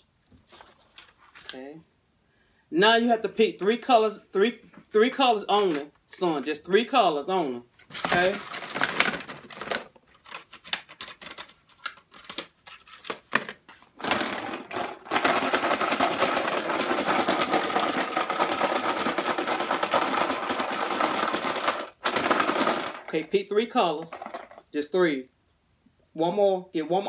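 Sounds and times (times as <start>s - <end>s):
markers rattling in plastic tub: 7.9s - 24.7s.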